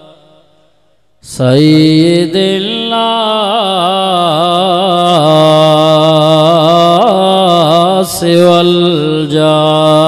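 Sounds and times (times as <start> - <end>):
man chanting with vibrato: 0.0 - 10.0.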